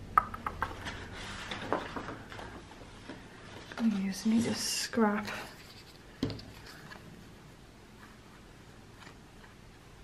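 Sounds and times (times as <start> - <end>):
paper rustling: 0.8 - 2.6, 5.3 - 7.1.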